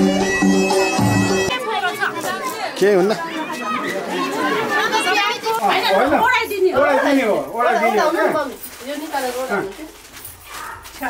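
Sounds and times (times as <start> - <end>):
voices chattering: 1.4 - 11.0.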